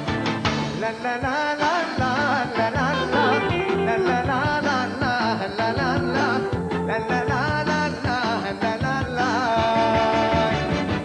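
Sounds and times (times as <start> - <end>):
live band playing pop: 0.0 - 11.0.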